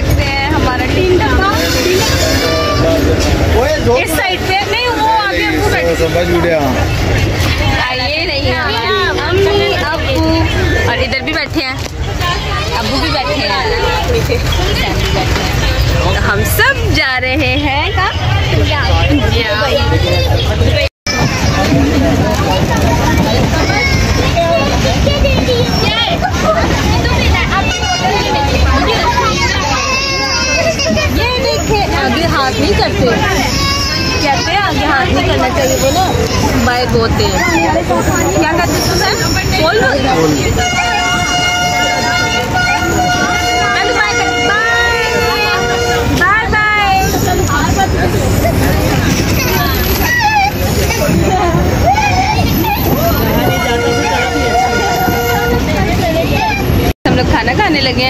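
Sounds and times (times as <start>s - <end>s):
people talking: 0.0s - 58.0s
voices chattering: 0.0s - 58.0s
train running rumble: 19.3s - 58.0s
train horn chord: 40.6s - 46.2s, 53.4s - 55.8s.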